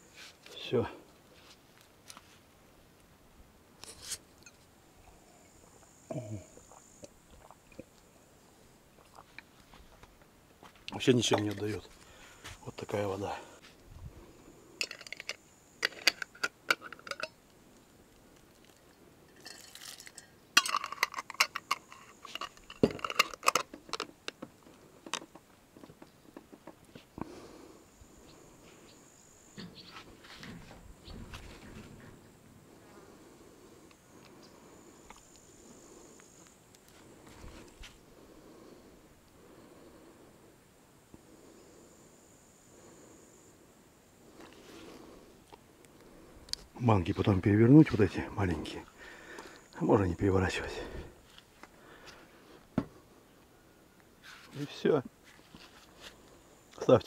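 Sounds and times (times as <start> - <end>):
metal lids scraping on glass jars: 14.8 - 17.4, 19.4 - 24.1.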